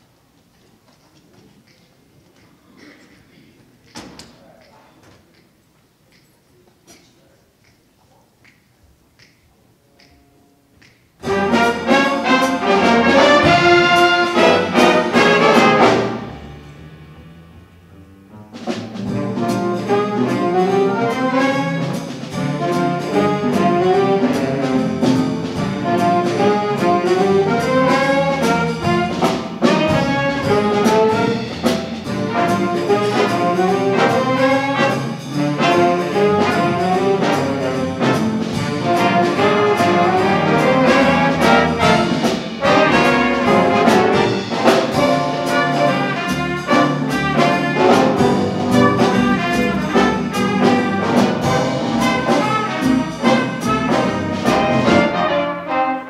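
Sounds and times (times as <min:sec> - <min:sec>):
jazz big band playing: 0:10.1 - 0:56.0
steady drum beat: 0:11.2 - 0:55.5.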